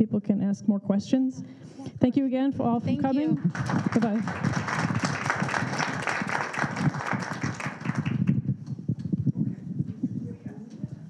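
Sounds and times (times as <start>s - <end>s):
low murmur of voices: 1.6s - 11.0s
audience applauding: 3.2s - 8.4s.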